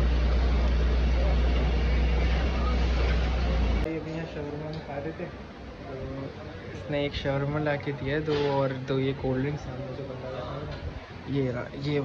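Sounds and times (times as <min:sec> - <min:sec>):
busy street noise: 0:00.0 - 0:12.0.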